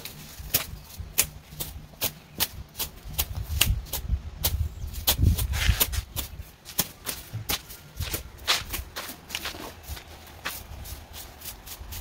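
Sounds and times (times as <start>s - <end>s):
footsteps scuffing on dusty ground: 4.5s - 12.0s.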